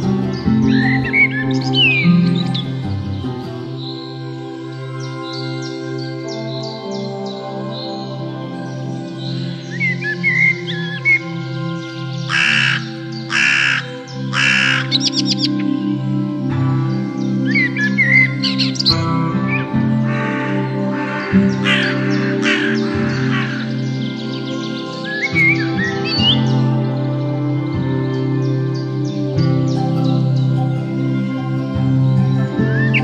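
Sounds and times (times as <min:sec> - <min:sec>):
soft ambient music with drone: 0:00.0 - 0:33.0
songbird chirps: 0:00.0 - 0:33.0
crow cawing: 0:12.3 - 0:15.6, 0:19.2 - 0:25.6.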